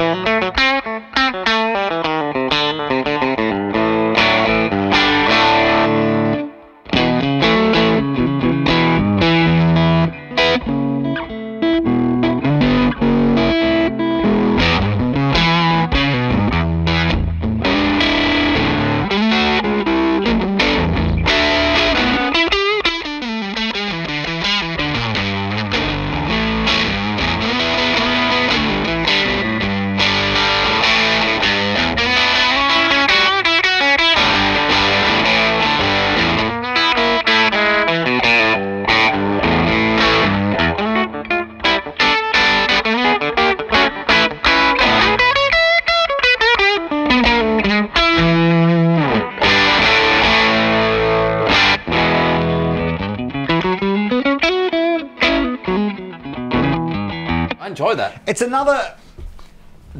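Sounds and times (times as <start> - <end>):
distorted electric guitar: 0.0 - 57.6.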